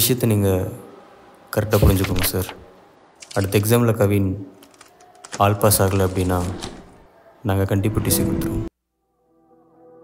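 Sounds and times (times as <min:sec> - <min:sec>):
man speaking: 0:01.6 - 0:02.6, 0:05.3 - 0:08.7.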